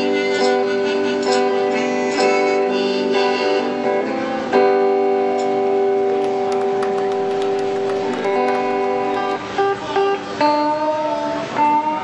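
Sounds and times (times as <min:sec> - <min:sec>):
electric guitar chord ringing: 0:04.6 - 0:11.2.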